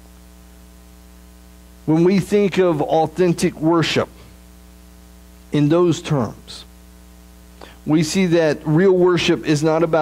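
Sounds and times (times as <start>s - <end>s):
electrical mains hum: 0.0s - 10.0s
man's voice: 1.9s - 4.1s, 5.6s - 6.7s, 7.8s - 10.0s.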